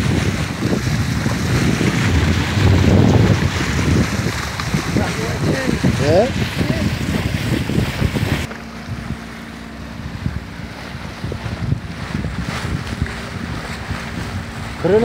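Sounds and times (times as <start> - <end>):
water rushing along hull: 0.0 - 15.0
wind buffeting microphone: 0.0 - 15.0.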